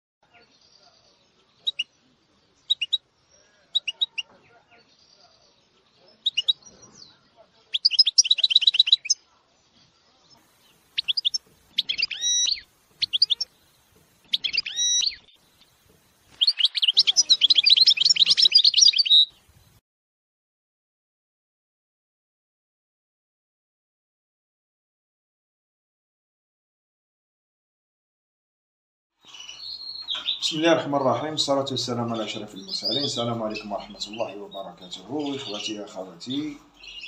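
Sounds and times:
canaries and finches singing: 0.2s - 19.8s, 29.2s - 37.0s.

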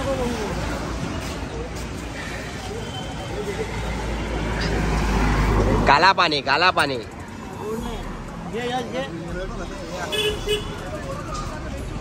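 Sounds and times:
faint voices: 0.0s - 12.0s
road traffic rumble: 0.0s - 12.0s.

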